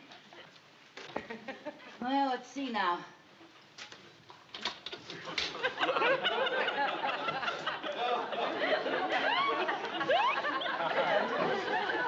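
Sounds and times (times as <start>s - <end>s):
studio audience laughter: 5.3s - 12.0s.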